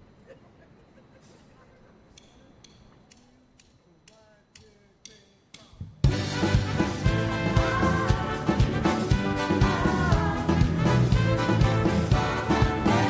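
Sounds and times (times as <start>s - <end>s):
light sharp ticks: 2.1s - 5.7s
full band playing loudly: 6.0s - 13.0s.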